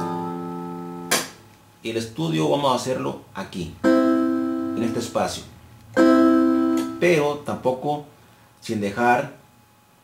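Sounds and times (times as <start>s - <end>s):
sharp click: 1.1s - 1.4s
electronic keyboard low note: 3.8s - 5.4s.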